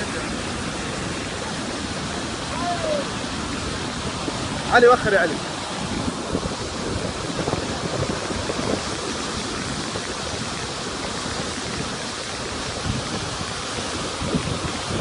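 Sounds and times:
flood water rushing over rocks: 0.0s - 15.0s.

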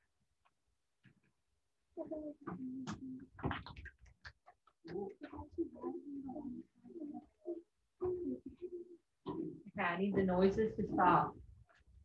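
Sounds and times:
pitched vocal noises: 4.9s - 9.7s.

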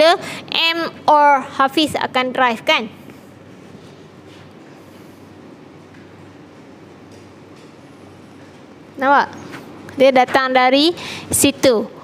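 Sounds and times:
low room hum and hiss: 0.0s - 12.0s.

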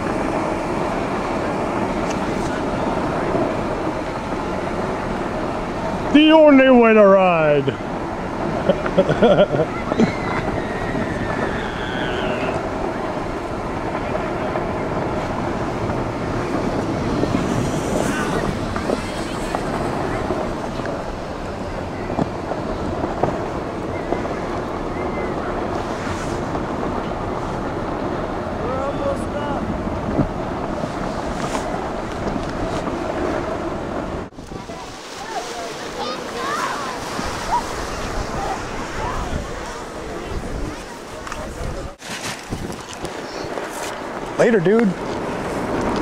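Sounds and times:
faint distant voices: 0.0s - 46.0s
tube sliding over snow: 0.0s - 46.0s
wind on microphone: 0.0s - 46.0s.

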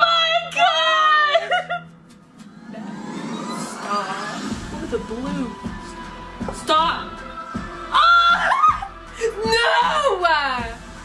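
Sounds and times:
rising whoosh: 2.4s - 5.5s
women squealing with laughter: 8.0s - 8.9s.

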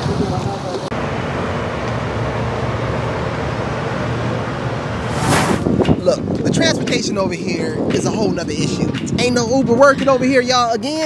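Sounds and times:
outdoor rushing noise: 2.2s - 6.2s
short whoosh: 5.0s - 5.8s.

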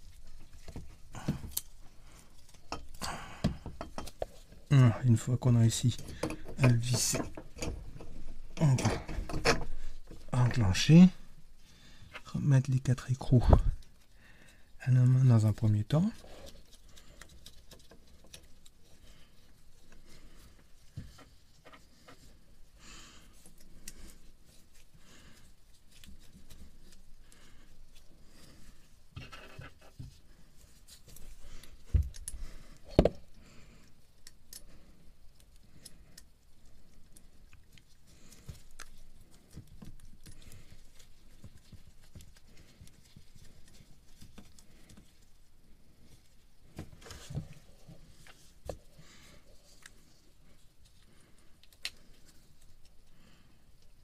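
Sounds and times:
faint scraping and rustling: 0.0s - 54.0s.

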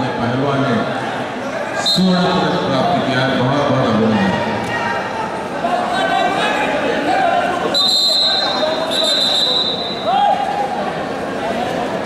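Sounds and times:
man talking: 1.8s - 4.5s
referee's whistle blasts: 7.7s - 10.2s.

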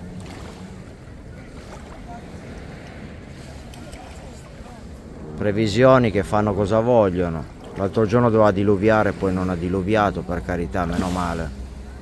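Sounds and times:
waves lapping on pebbles: 0.0s - 5.2s, 7.4s - 12.0s.

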